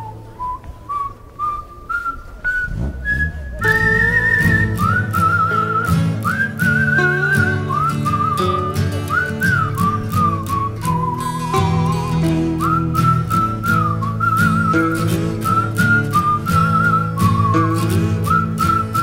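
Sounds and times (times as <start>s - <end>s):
whistled tune: 0.0s - 19.0s
musical accompaniment: 2.9s - 19.0s.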